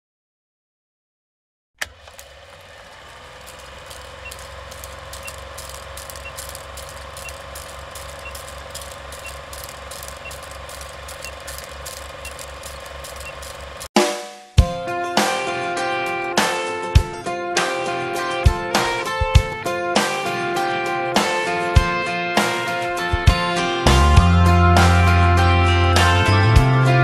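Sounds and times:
fast mechanical clatter: 1.8 - 13.9
film projector whirring: 1.8 - 13.9
faint ticking: 3.4 - 13.9
music: 14.0 - 27.0.

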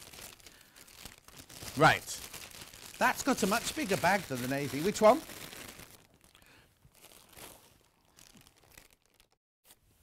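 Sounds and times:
plastic bag rustling: 0.0 - 9.4.

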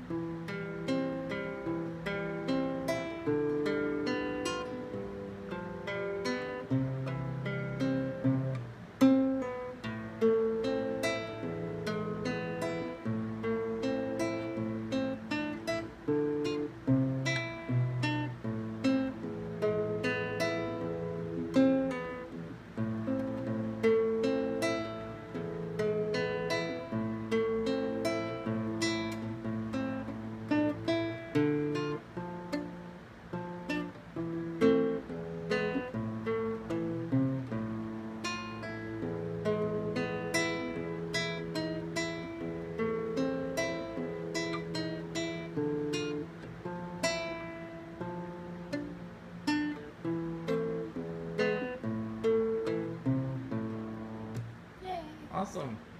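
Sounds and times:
fingerstyle classical guitar: 0.0 - 55.9.

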